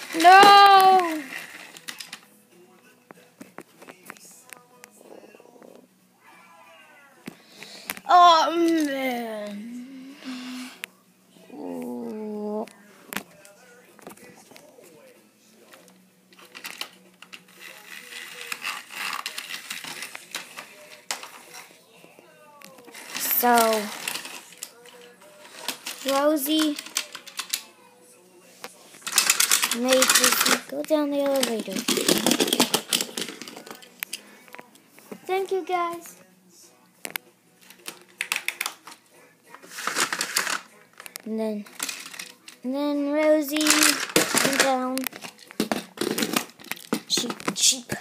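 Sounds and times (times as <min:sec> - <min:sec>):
plastic toy train pieces rattling: 0:00.0 - 0:02.2, 0:16.4 - 0:21.6, 0:22.9 - 0:27.7, 0:29.0 - 0:34.0, 0:39.6 - 0:40.7, 0:41.7 - 0:42.6, 0:43.5 - 0:47.8.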